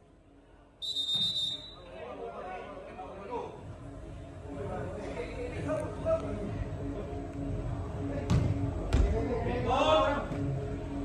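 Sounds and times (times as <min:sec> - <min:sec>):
low murmur of hall: 0:00.0 - 0:11.0
football kick thuds: 0:08.3 - 0:09.2.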